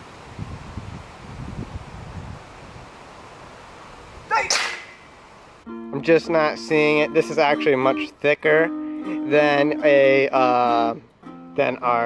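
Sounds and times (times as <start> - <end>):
rustling leaves: 0.0 - 5.7
wind in trees: 0.0 - 5.7
wind buffeting microphone: 0.1 - 3.0.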